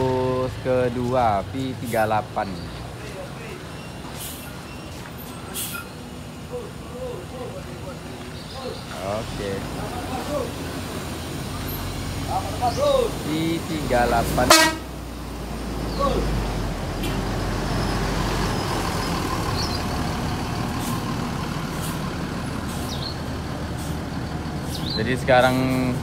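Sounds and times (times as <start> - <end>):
diesel bus engine running: 0.0 - 26.0
voices: 0.0 - 26.0
vehicle horn toot: 14.4 - 14.9.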